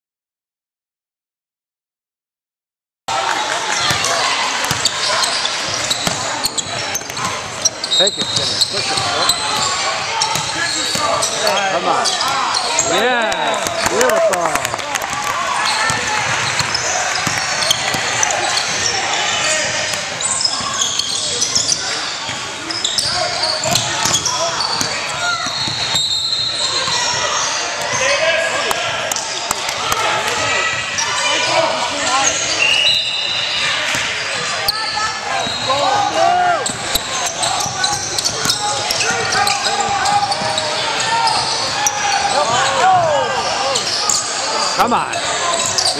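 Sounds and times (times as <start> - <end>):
indistinct crowd voices echoing: 3.1 - 45.9
basketball bouncing on court: 3.7 - 11.3, 13.5 - 14.0, 15.0 - 26.0, 36.6 - 43.1
sneaker squeaks: 3.8 - 13.0, 15.6 - 28.4, 29.1 - 45.9.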